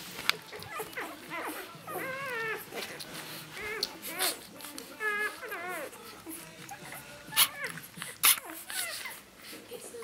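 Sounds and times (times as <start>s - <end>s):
puppies squeaking and whining: 0.0s - 10.0s.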